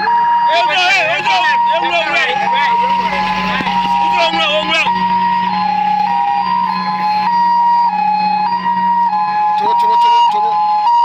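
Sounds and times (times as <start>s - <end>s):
two-tone hi-lo siren: 0.0s - 11.0s.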